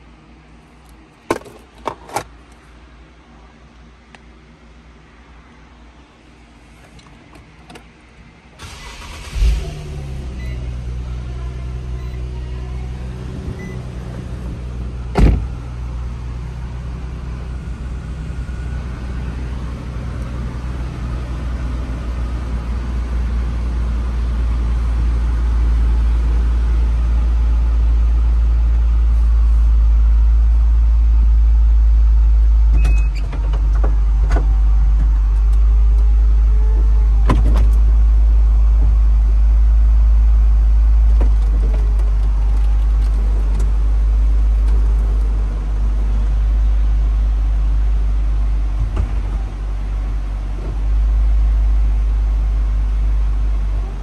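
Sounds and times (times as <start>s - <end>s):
car engine cranking and idling: 6.7s - 54.0s.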